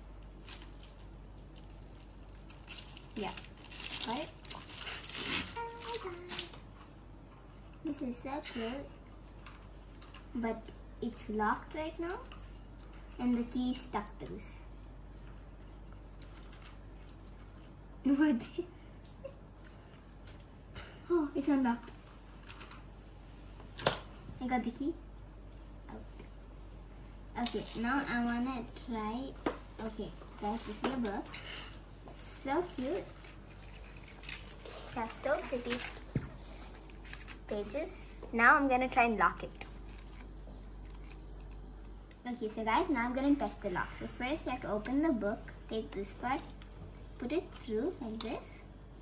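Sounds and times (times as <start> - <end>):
plastic wrapping crinkling and tearing: 0.1 - 6.8, 32.6 - 37.6.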